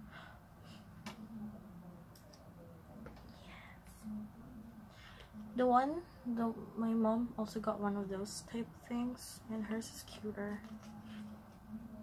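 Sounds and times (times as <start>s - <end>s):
soft whisper: 0.0s - 6.3s, 8.8s - 12.0s.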